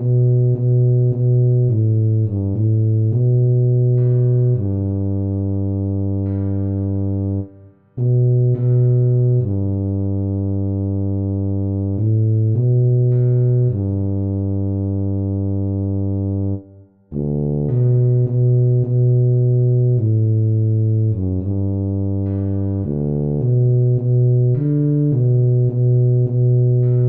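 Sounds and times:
tuba playing slow melody: 0.0s - 27.0s.

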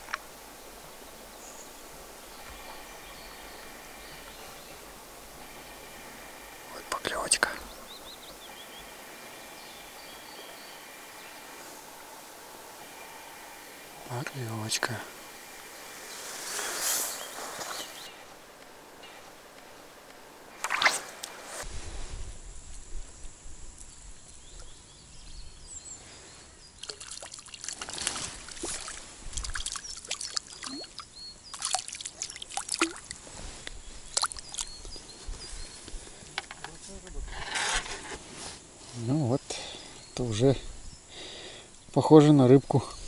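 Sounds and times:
sharp water splash: 20.6s - 21.2s, 26.8s - 33.2s.

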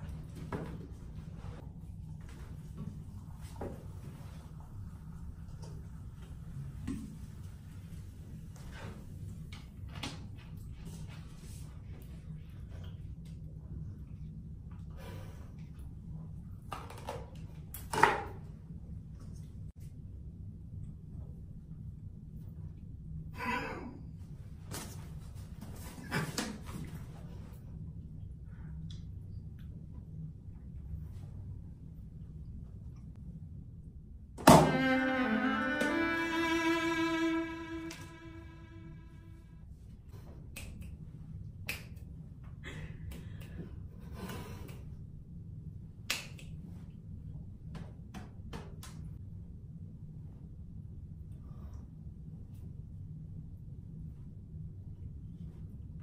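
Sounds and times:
low steady hum: 0.0s - 16.7s, 18.4s - 48.4s
finger snaps: 40.5s - 41.0s, 41.6s - 42.1s, 46.1s - 46.6s.

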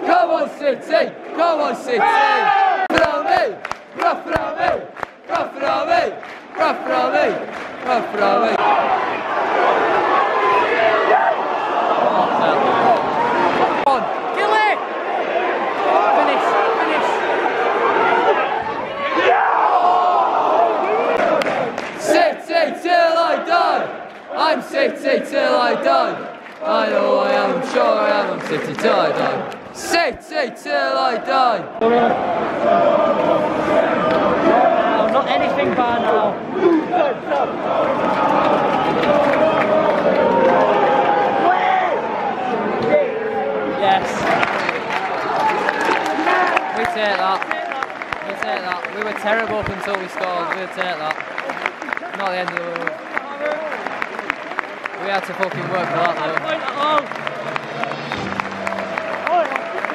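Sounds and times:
crowd shouting and groaning: 0.0s - 48.6s
crowd chanting: 0.0s - 52.0s.

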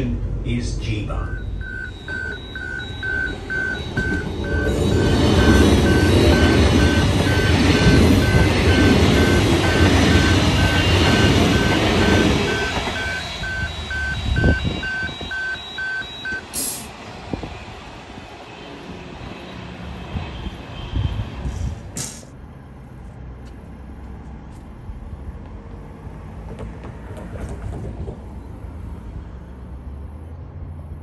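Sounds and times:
electric train passing: 0.2s - 21.9s
crossing alarm beeping: 0.7s - 17.0s.

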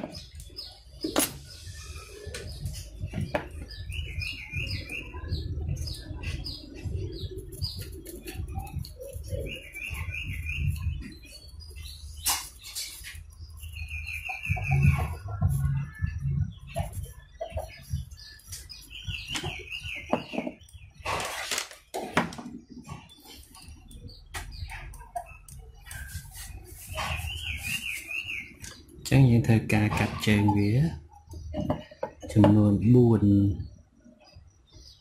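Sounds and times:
bird chirping: 0.0s - 35.0s
tools knocking on wooden bench: 19.4s - 20.6s, 31.5s - 32.6s.

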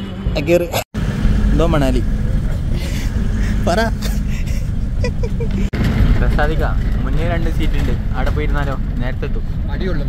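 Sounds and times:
bus engine rumble: 0.0s - 10.0s
voices: 1.4s - 10.0s.

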